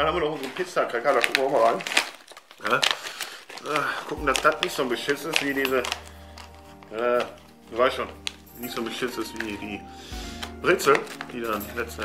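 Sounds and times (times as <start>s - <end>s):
foil food pouch crinkling: 0.0s - 12.0s.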